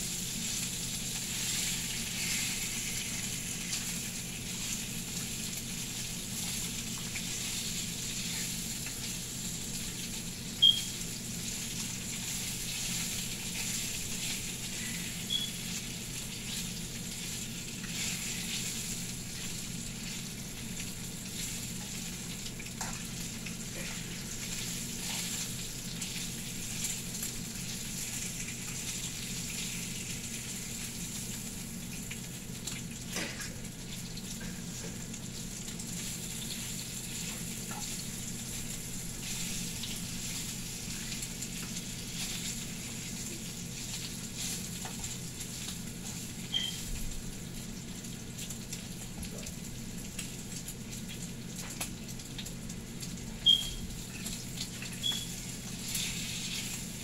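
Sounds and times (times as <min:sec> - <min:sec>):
bacon sizzling in a frying pan: 0:00.0 - 0:57.0.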